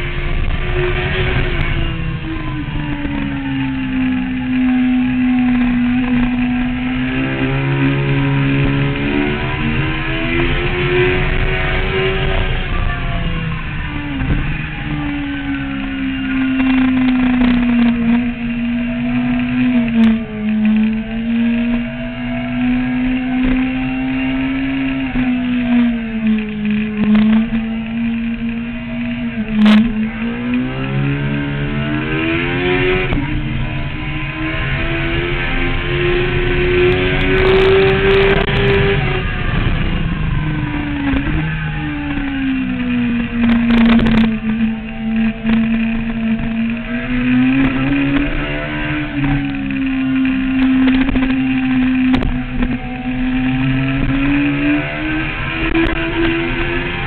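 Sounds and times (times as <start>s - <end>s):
motorcycle engine revving: 0.0s - 57.0s.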